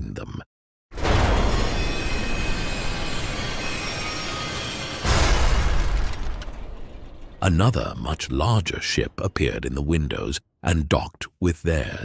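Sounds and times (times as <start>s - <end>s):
heavy door slamming boom: 1.0s - 8.0s.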